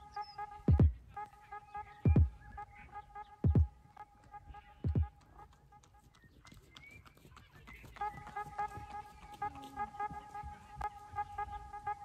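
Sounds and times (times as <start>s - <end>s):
horse hoofbeats on grass: 3.2s - 12.0s.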